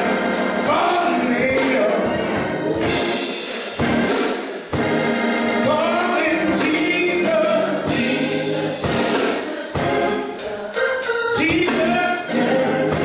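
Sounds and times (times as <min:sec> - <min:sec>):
gospel choir singing: 0:00.0 - 0:13.0
steady beat accompaniment: 0:00.0 - 0:13.0.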